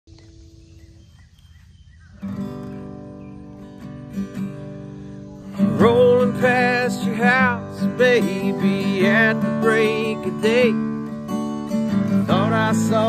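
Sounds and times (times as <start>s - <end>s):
acoustic guitar strumming: 2.1s - 13.0s
man singing: 5.5s - 11.2s, 12.0s - 13.0s.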